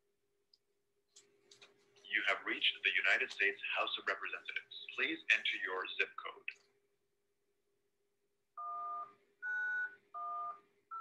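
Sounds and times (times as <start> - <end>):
faint steady hum: 0.1 - 11.0.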